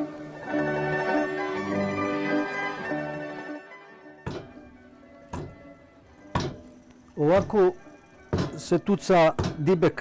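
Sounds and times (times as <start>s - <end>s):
wooden pestle thudding in mortar: 4.3s - 4.6s, 5.3s - 5.6s, 6.3s - 6.7s, 8.3s - 8.7s, 9.3s - 9.7s.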